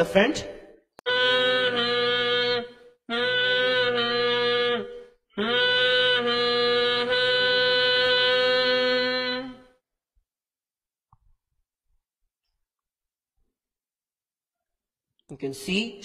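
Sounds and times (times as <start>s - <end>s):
conch shell blowing: 1.0s - 9.8s.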